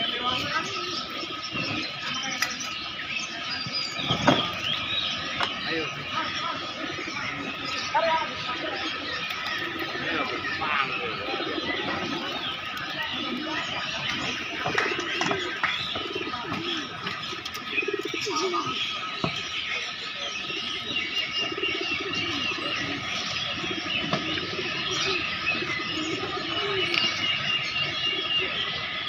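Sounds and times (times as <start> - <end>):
birds chirping: 0.0 - 29.0
pigeons cooing: 0.0 - 29.0.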